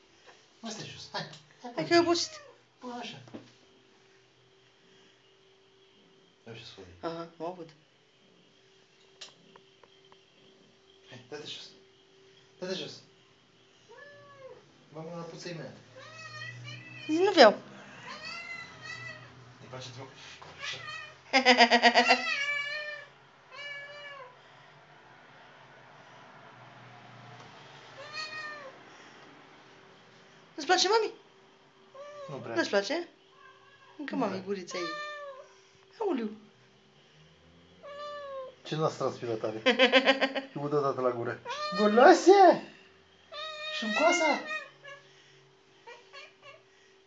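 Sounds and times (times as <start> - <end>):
cat meowing: 1.8 - 2.6, 13.9 - 14.6, 15.9 - 19.4, 20.6 - 21.3, 22.0 - 24.4, 28.0 - 28.8, 31.9 - 32.5, 33.3 - 34.0, 34.7 - 35.5, 37.8 - 38.6, 41.4 - 42.3, 43.3 - 45.1.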